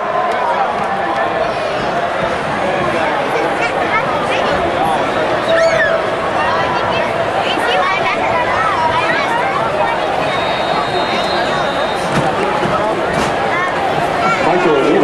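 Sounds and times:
stadium crowd hubbub: 0:00.0 - 0:15.0.

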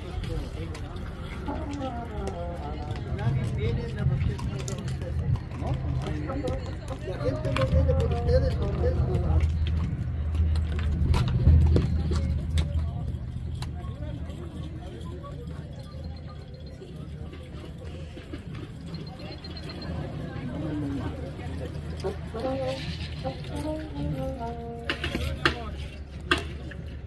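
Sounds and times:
people talking: 0:00.0 - 0:27.0.

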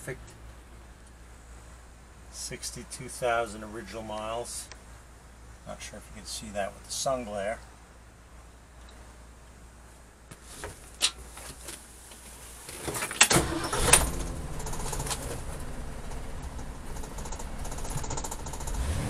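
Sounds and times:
engine starting and idling: 0:13.1 - 0:19.0
keys clicking in ignition: 0:13.2 - 0:15.5, 0:16.1 - 0:18.8.

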